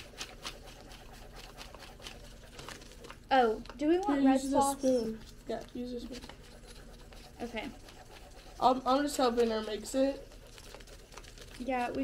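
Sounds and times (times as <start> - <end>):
low room hum: 0.0 - 12.0
small items ticking and rustling: 8.6 - 12.0.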